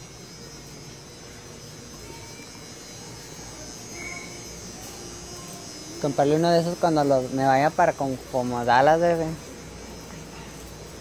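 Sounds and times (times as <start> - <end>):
low indoor hum: 0.0 - 11.0.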